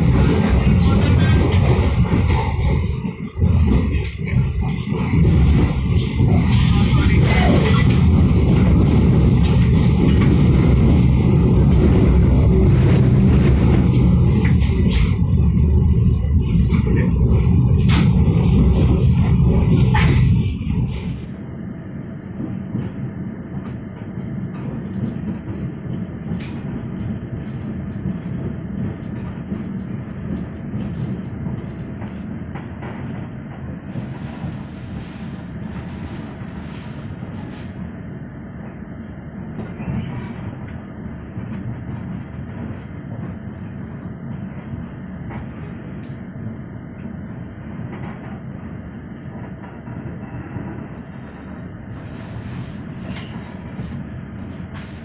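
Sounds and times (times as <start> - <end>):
train coach rumbling: 0.0 - 55.0
train running noise: 0.0 - 55.0.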